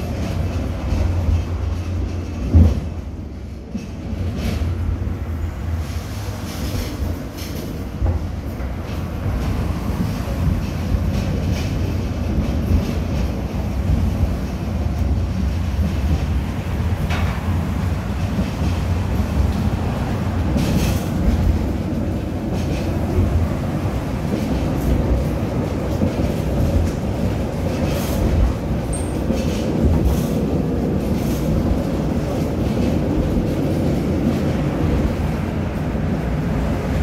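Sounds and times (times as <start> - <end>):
wheel clacks on rails: 0.0 - 4.9, 6.5 - 37.0
tram rumbling on track: 0.0 - 37.0.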